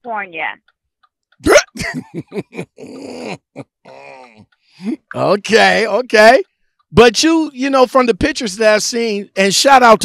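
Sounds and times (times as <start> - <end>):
person laughing: 1.4 - 6.2
wordless vocal exclamation: 1.4 - 6.4.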